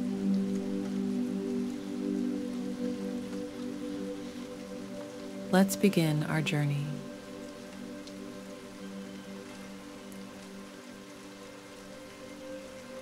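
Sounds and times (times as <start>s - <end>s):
ambient music drone: 0.0s - 13.0s
steady rain: 0.0s - 13.0s.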